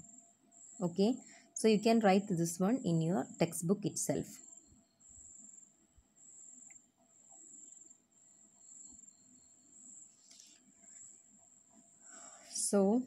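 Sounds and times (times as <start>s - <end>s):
faint high-pitched trill: 0.0s - 13.0s.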